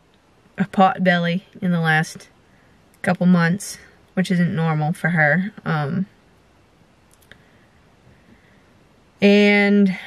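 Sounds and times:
faint clicks: 0:07.1 - 0:07.5.

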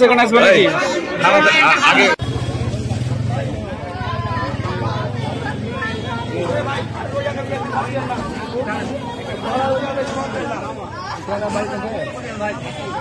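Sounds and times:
people talking: 0:00.0 - 0:13.0.

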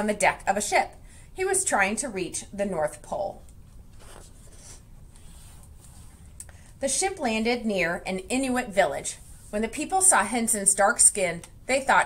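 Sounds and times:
book page turning: 0:03.9 - 0:06.1.

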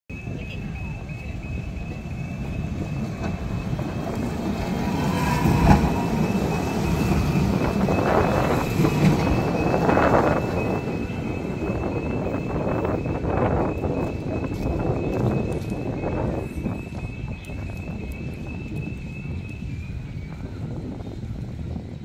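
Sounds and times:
tram rolling past: 0:00.1 - 0:22.0.

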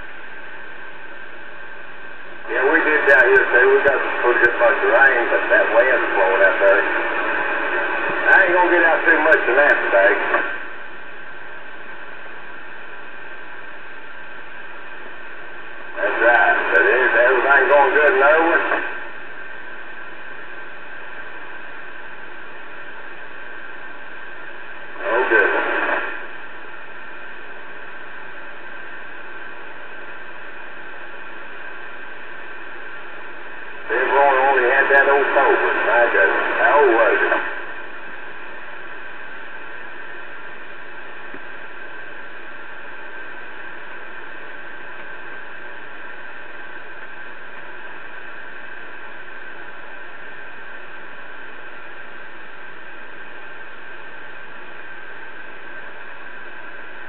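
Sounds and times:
radio receiver hiss: 0:00.0 - 0:57.0
voice over radio: 0:02.4 - 0:10.6, 0:15.9 - 0:19.0, 0:24.9 - 0:26.2, 0:33.8 - 0:37.7.

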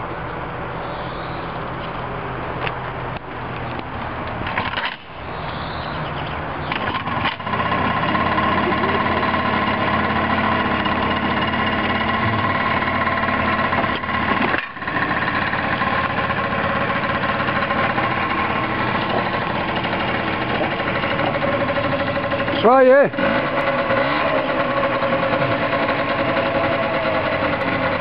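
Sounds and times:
scooter engine idling: 0:05.1 - 0:28.0.

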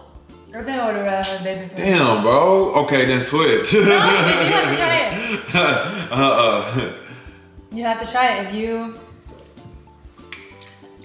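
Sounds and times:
quiet background music: 0:00.0 - 0:11.0
metal spoon clinking glass jar: 0:10.2 - 0:11.0.

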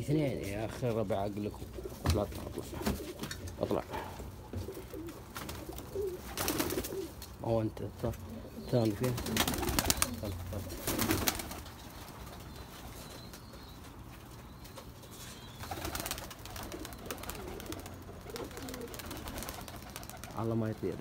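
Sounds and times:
pigeons cooing: 0:00.7 - 0:21.0.

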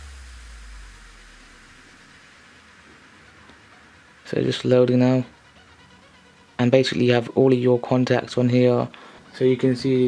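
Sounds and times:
low hum: 0:00.0 - 0:07.8
faint steady hiss: 0:00.0 - 0:10.0.

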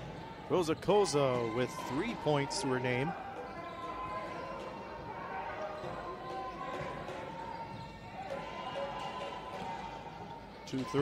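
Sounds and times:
crowd and player chatter: 0:00.0 - 0:11.0.

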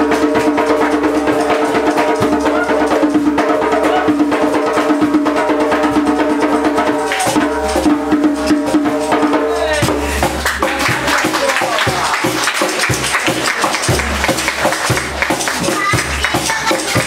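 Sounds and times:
steady percussive beat: 0:00.0 - 0:17.0.

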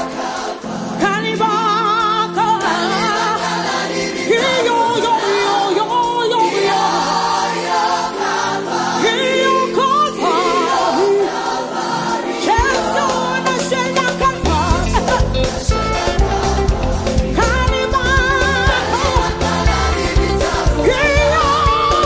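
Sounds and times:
gospel choir singing: 0:00.0 - 0:22.0
sustained keyboard chords: 0:00.0 - 0:22.0.

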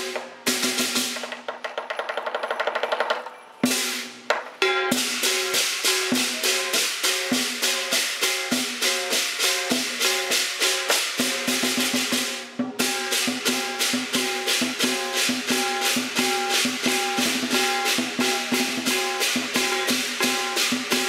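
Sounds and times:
drum strokes: 0:00.0 - 0:21.0
cymbals clashing: 0:03.6 - 0:21.0.

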